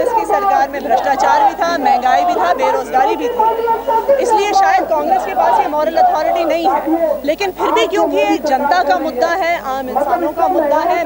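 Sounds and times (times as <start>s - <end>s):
woman speaking: 0.0s - 11.0s.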